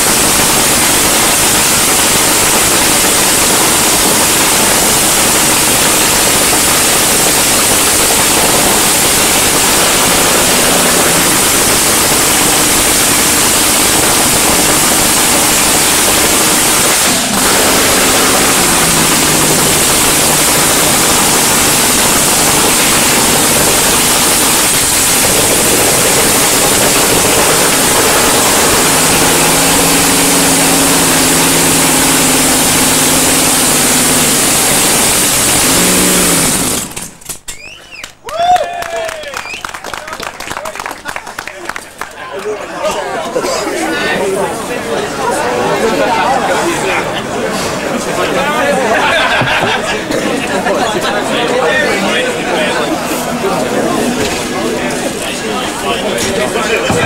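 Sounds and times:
dragster engine roaring: 0:00.0 - 0:37.4, 0:43.9 - 0:57.0.

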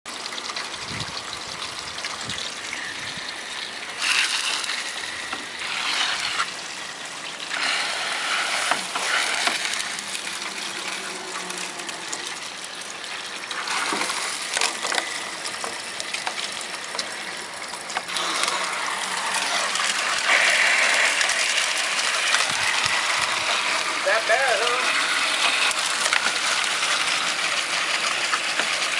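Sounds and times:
hose water spraying and splashing: 0:00.1 - 0:28.9.

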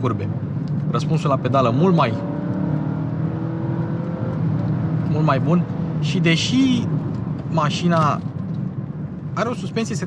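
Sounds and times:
car engine hum: 0:00.0 - 0:10.0
road noise: 0:00.0 - 0:10.0.

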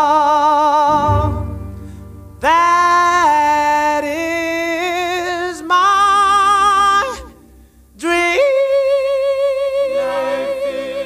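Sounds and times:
doo-wop vocal group singing: 0:08.0 - 0:11.0
high voice singing with vibrato: 0:08.0 - 0:11.0.

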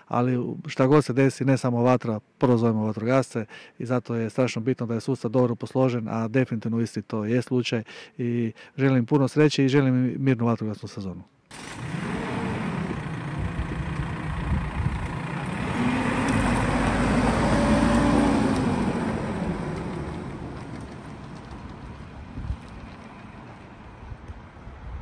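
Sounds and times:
truck driving past: 0:11.5 - 0:24.2.

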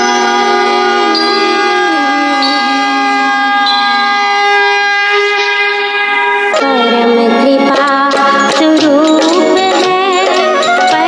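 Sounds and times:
harmonium playing chords: 0:00.0 - 0:11.0.

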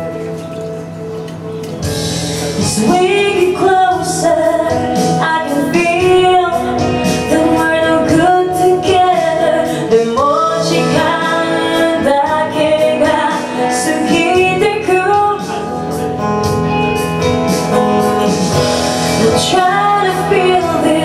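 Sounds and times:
acoustic guitar strummed and picked: 0:00.0 - 0:21.0
woman singing into a microphone: 0:02.2 - 0:17.1, 0:18.4 - 0:21.0.

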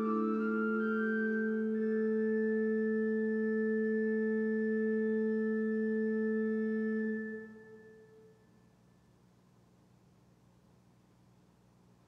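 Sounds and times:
pipe organ chord: 0:00.0 - 0:08.5.

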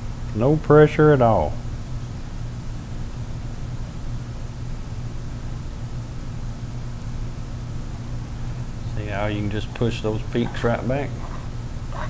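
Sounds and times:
low electrical hum: 0:00.0 - 0:12.0
even hiss: 0:08.2 - 0:11.9.

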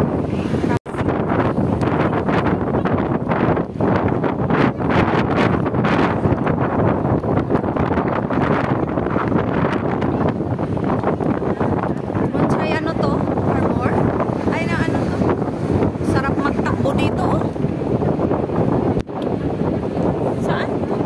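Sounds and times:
wind buffeting microphone: 0:00.0 - 0:21.0
bus running noise: 0:06.0 - 0:21.0.

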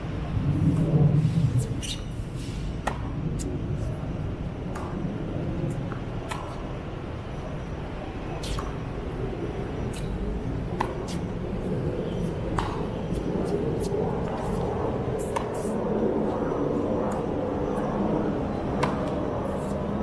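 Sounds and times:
steady low rumble: 0:00.0 - 0:20.0
tennis balls struck by rackets: 0:02.8 - 0:03.5, 0:04.6 - 0:06.8, 0:08.4 - 0:09.0, 0:09.8 - 0:16.4, 0:18.6 - 0:19.8.

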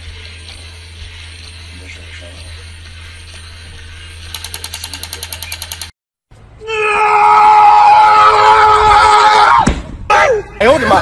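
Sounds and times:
toy gear mechanism clicking: 0:04.2 - 0:05.9.

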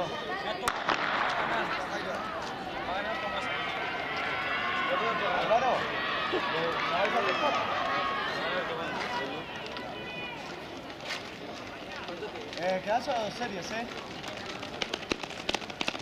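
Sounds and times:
spectators shouting and cheering: 0:00.0 - 0:10.9.

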